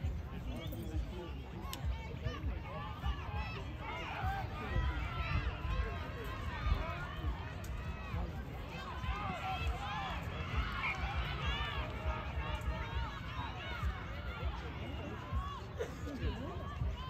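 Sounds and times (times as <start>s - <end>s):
voices calling and shouting: 0.0s - 17.0s.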